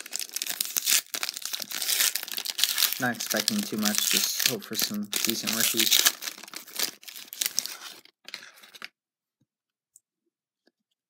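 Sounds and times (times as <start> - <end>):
foil wrapper crinkling: 0.0 - 8.9.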